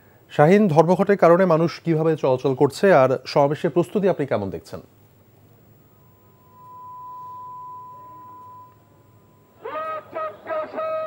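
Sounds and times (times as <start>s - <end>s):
faint line hiss: 2.6s - 9.8s
steady pure test tone: 3.2s - 10.2s.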